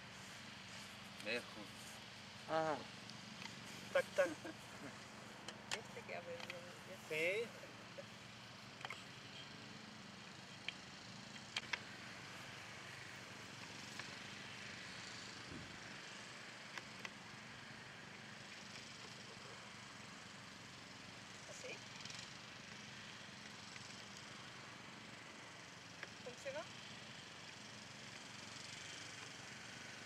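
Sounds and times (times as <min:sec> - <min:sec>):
outdoor background hiss: 0:00.0 - 0:30.0.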